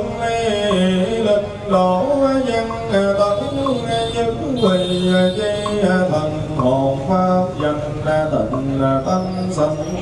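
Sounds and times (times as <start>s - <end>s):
man chanting into microphone: 0.0s - 10.0s.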